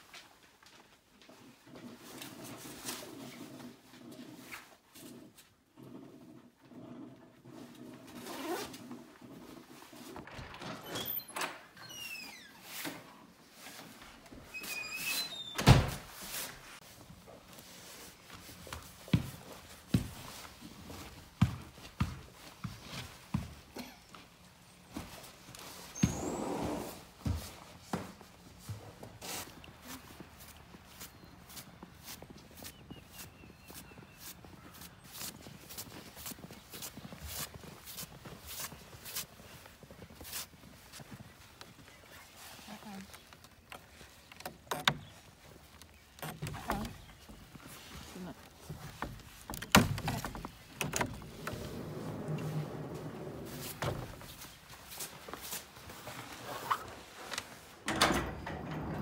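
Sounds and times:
metal latch clattering: 57.8 - 59.0.

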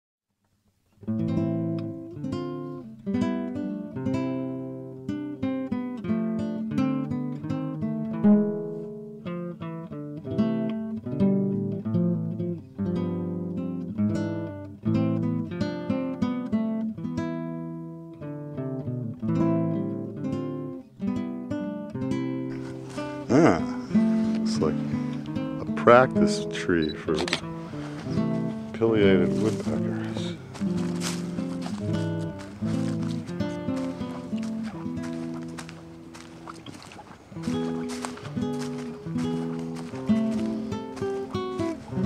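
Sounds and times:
acoustic guitar music: 0.9 - 42.0.

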